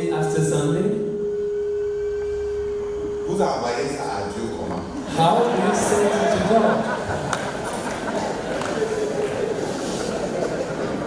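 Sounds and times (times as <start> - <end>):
steady pure tone: 0.0 - 11.0.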